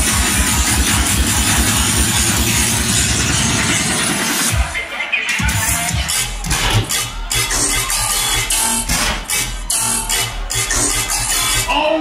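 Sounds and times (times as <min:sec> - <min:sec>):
electronic bass music: 0:00.0 - 0:12.0.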